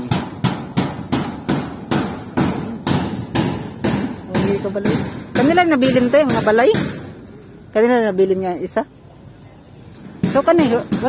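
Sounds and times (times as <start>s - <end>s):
hammer blows on corrugated metal: 0.0s - 7.4s, 10.0s - 11.0s.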